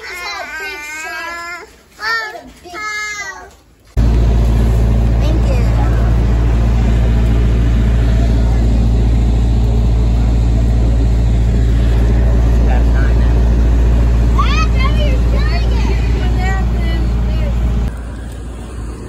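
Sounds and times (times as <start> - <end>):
truck engine idling: 4.0 - 19.0.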